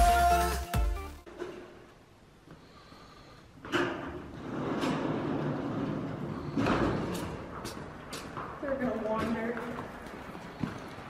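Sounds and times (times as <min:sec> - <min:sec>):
horse shuffling and scuffing: 0:04.6 - 0:11.0.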